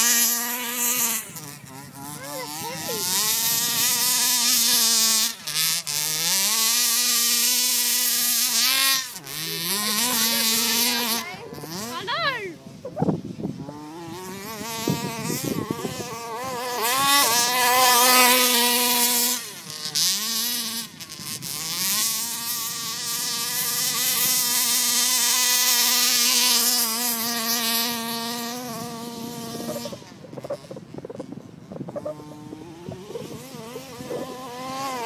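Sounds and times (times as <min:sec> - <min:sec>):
rc buggy engine buzzing: 0:00.0 - 0:35.0.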